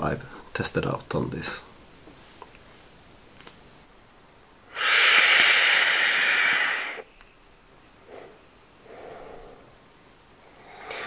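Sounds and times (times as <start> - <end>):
air hissing through vape: 4.7 - 7.1.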